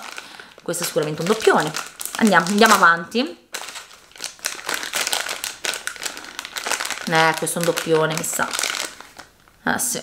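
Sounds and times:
plastic packet crinkling: 0.0 - 9.6.

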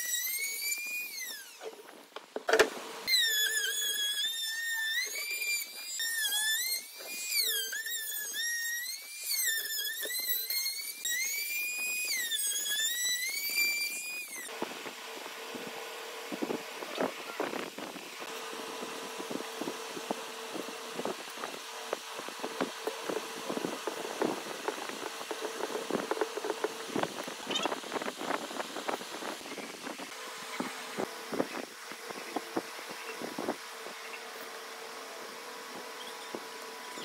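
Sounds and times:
trim router cutting wood: 2.6 - 37.0.

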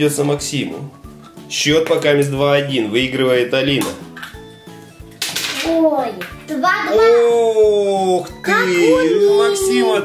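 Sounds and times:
faint background music: 0.0 - 10.0
child speaking: 5.6 - 7.5, 8.4 - 10.0.

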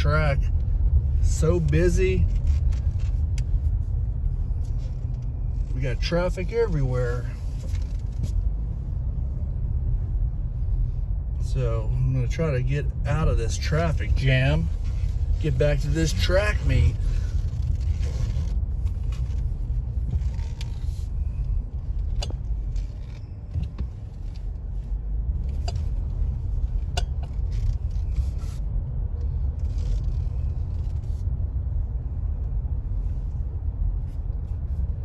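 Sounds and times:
car cabin rumble: 0.0 - 35.0.

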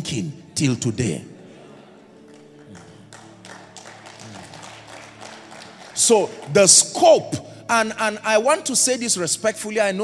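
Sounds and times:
soft sustained background music: 0.0 - 10.0.

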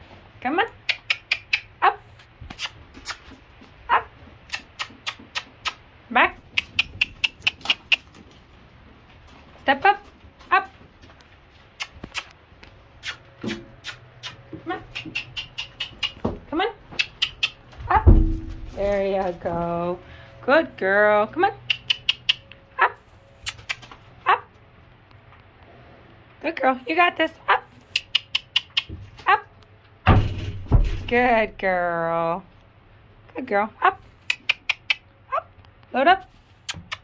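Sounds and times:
short kissing noises: 0.8 - 1.7, 2.5 - 3.3, 4.5 - 5.8, 13.0 - 16.2, 27.9 - 28.9, 34.3 - 35.0, 36.6 - 37.0
tongue clicks: 0.8 - 1.8, 2.5 - 3.2, 4.5 - 5.8, 6.5 - 8.2, 11.8 - 12.3, 13.0 - 16.2, 16.9 - 17.6, 21.6 - 22.6, 23.4 - 24.0, 27.9 - 29.0, 34.2 - 35.1, 36.7 - 37.0
low thump: 17.8 - 18.8, 30.1 - 31.3.

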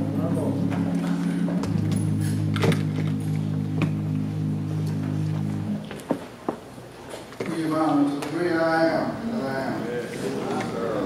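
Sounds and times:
low organ chords: 0.0 - 6.9.

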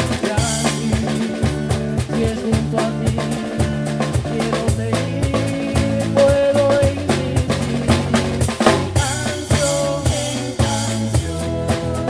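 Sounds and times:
band playing: 0.0 - 12.0
bass line: 0.0 - 12.0
drum kit rimshots: 0.0 - 12.0
guitar: 0.0 - 12.0.

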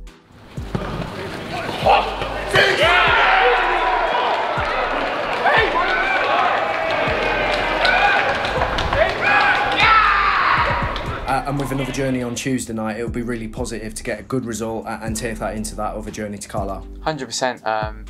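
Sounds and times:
crowd noise: 0.4 - 12.4
ball being kicked: 0.6 - 2.4
players shouting: 0.6 - 12.2.

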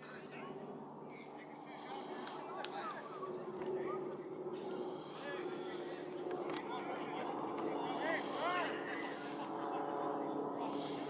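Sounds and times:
distant shouts and calls: 0.0 - 11.0
steady background noise: 0.0 - 11.0.

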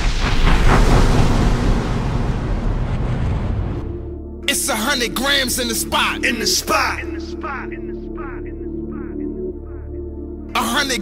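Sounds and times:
loud rushing rumbling noise: 0.0 - 4.2.

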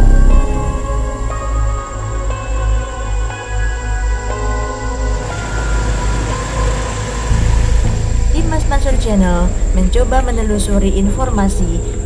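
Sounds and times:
low rumble: 0.0 - 2.4, 5.2 - 12.0.

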